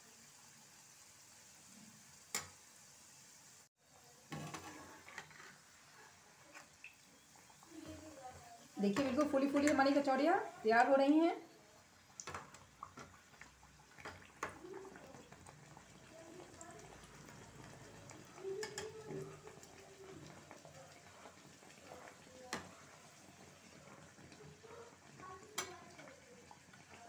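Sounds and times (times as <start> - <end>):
food sizzling in hot oil: 0.0 - 27.0.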